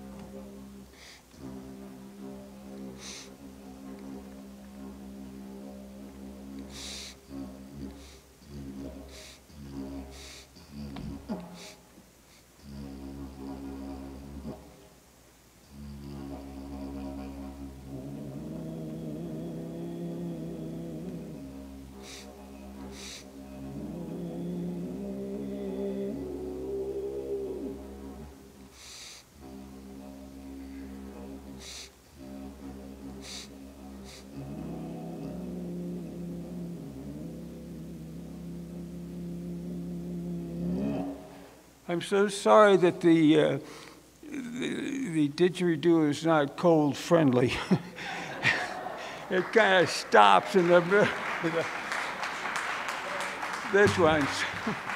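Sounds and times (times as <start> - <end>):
didgeridoo drone: 0.0 - 11.7, 12.6 - 14.8, 15.7 - 28.8, 29.4 - 41.5.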